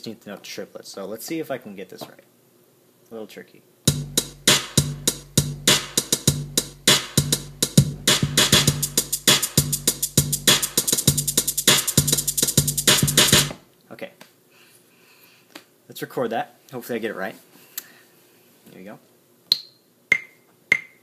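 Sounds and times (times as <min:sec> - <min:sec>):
drum machine percussion hits: 0:03.9 - 0:13.6, 0:20.1 - 0:21.0.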